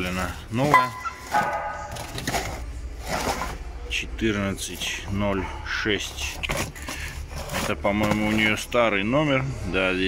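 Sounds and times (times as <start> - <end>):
cardboard rustling scrapes: 1.2 - 3.6, 6.2 - 8.6.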